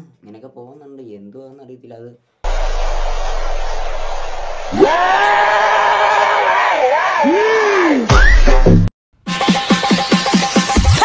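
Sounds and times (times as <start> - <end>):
loud steady rushing noise: 2.5 - 4.9.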